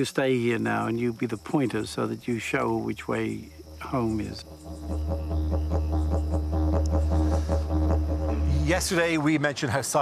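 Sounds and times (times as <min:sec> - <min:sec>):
didgeridoo pulsing drone: 0:03.3 - 0:09.3.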